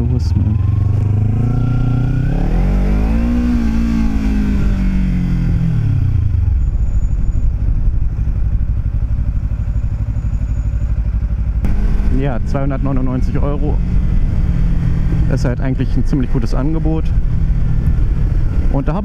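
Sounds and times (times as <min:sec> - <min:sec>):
motorcycle engine revving: 0:00.0 - 0:19.0
wind and road noise: 0:00.0 - 0:19.0.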